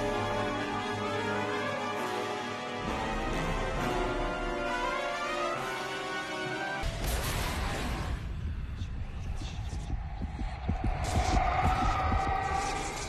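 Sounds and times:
low rumbling throb: 8.2 - 13.0.

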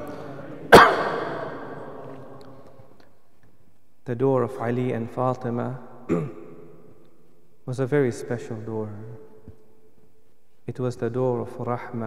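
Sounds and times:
loud sharp cough: 0.7 - 1.7, 6.1 - 6.5.

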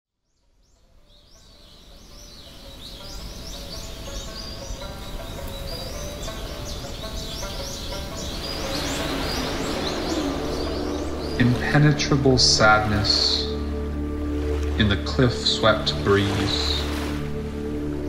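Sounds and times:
birds chirping: 0.2 - 18.0
soft sustained musical tones: 0.5 - 18.0
rushing noise: 7.9 - 17.4.

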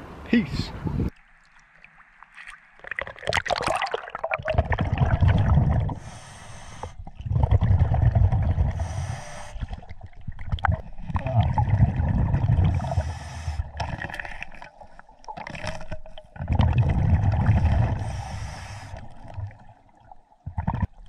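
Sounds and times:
water splash: 1.1 - 5.9
exhaled bubbles rumbling underwater: 2.8 - 6.3, 6.9 - 21.0
regulator inhale hiss: 6.0 - 7.1, 8.8 - 9.8, 12.8 - 13.8, 17.8 - 19.1.

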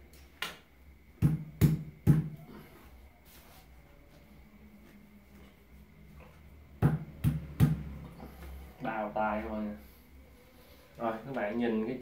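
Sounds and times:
knocks on plastic pipe: 1.2 - 2.4.

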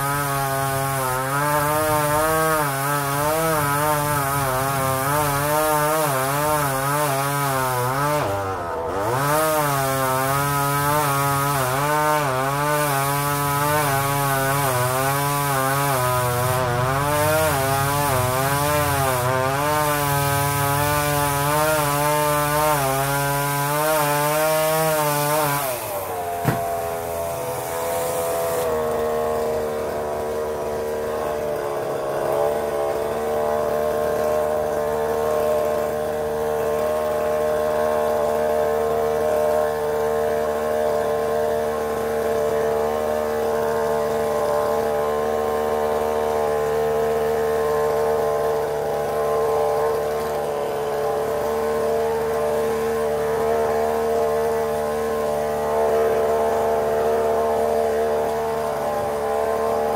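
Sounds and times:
chainsaw engine running: 0.0 - 59.9.

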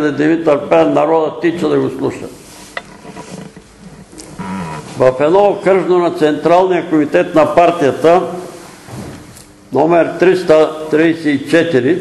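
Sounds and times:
room hiss: 3.6 - 12.0.

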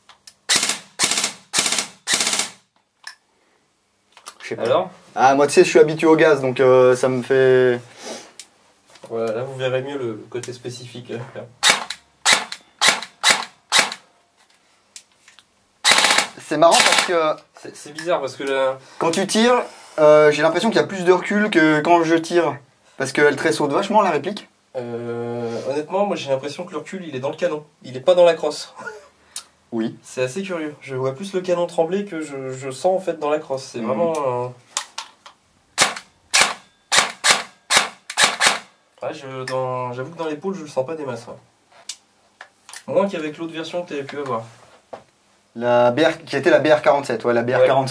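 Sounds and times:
airsoft rifle shots: 0.5 - 2.7, 11.6 - 14.0, 15.8 - 17.2, 35.8 - 38.7.

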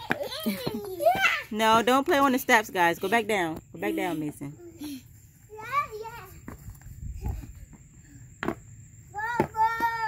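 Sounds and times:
child's high-pitched call: 9.1 - 10.0.

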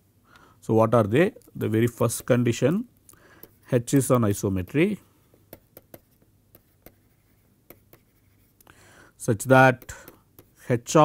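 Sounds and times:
stylus tapping and scraping tablet: 1.3 - 4.4, 5.3 - 8.8, 9.4 - 10.7.

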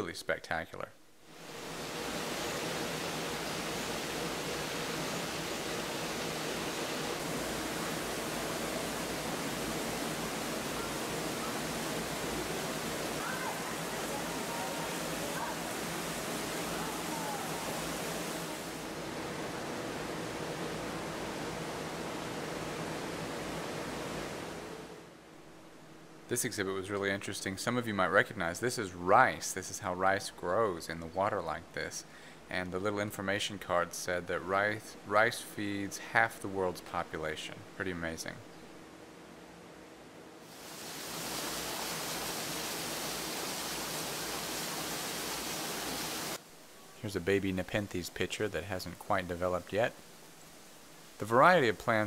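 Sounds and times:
rushing hiss: 40.5 - 46.4.

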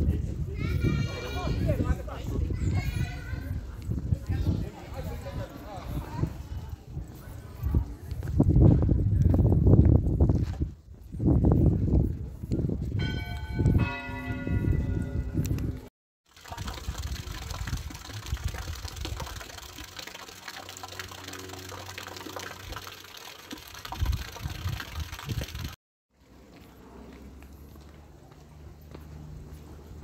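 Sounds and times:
church bell ringing: 13.0 - 15.6.

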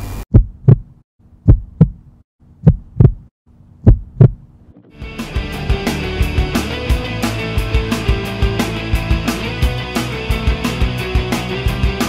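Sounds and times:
heartbeat thumps: 0.3 - 4.5
music: 4.9 - 12.0.

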